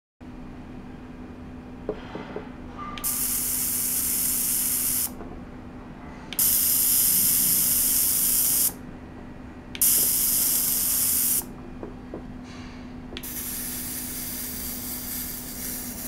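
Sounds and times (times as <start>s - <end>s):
ultrasonic cleaner hissing: 3.0s - 5.2s, 6.4s - 8.8s, 9.8s - 11.5s, 13.2s - 16.0s.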